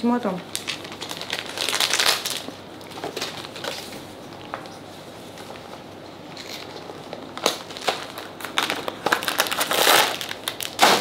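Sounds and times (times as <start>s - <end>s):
plastic packaging crinkling: 0.5s - 4.5s, 5.4s - 11.0s.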